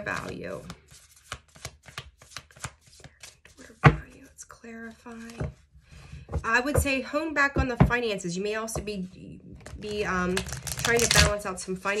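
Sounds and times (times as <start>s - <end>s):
cards being shuffled: 0.0s - 4.2s, 4.9s - 5.7s, 9.6s - 11.4s.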